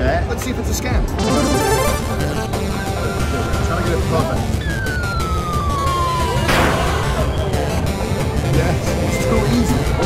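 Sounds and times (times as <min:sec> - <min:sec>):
falling whistle sound effect: 0:04.6 - 0:07.7.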